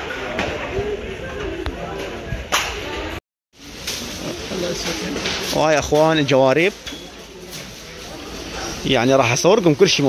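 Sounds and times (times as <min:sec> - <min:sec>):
background chatter of voices: 0:00.0 - 0:10.0.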